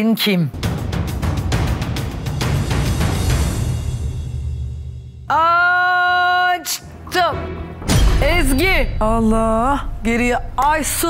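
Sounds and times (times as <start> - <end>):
suspense music: 0.5 - 6.2, 6.8 - 11.0.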